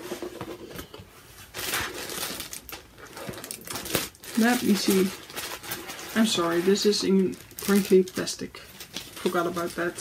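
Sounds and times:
plastic wrapping crinkling: 1.4 - 10.0.

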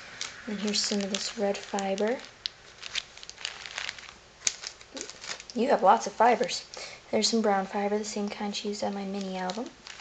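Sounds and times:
plastic bag crinkling: 0.0 - 6.9, 8.2 - 10.0.

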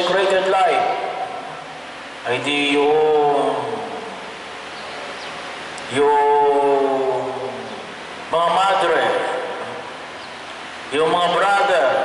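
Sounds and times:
man's voice through microphone: 0.0 - 1.5, 2.2 - 4.2, 5.8 - 9.9, 10.9 - 12.0.

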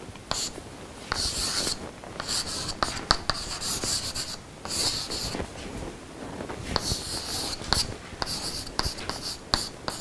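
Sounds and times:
chalk tapping board: 0.3 - 5.4, 6.8 - 10.0
chalk scratching on blackboard: 0.3 - 5.5, 6.8 - 10.0.

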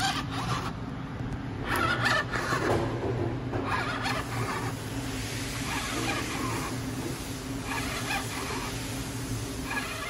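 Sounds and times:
squeaky whining mechanism: 0.0 - 0.9, 1.6 - 3.0, 3.6 - 10.0
ventilator motor hum: 0.0 - 10.0.

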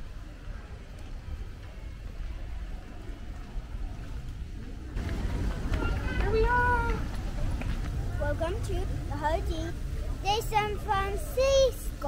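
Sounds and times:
wind rumble on microphone: 0.0 - 10.2
faint outdoor background noise: 0.0 - 12.0.

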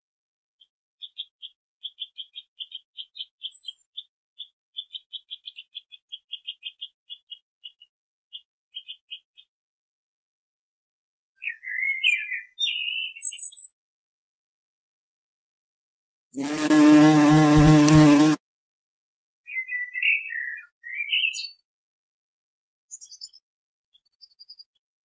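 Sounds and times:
bird chirping: 0.6 - 9.5, 11.4 - 13.8, 19.5 - 21.6, 22.9 - 24.8.

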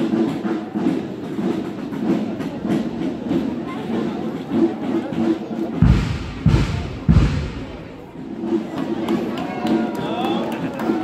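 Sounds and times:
marching boots on asphalt: 0.0 - 10.2.

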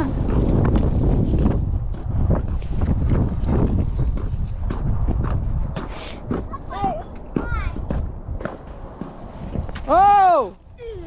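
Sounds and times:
wind rumble on microphone: 0.0 - 11.0
child's high-pitched voice: 6.4 - 7.9, 10.8 - 11.0.

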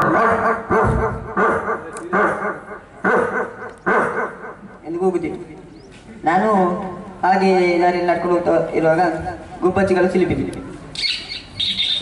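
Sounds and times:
person imitating dog barking: 0.0 - 4.6.

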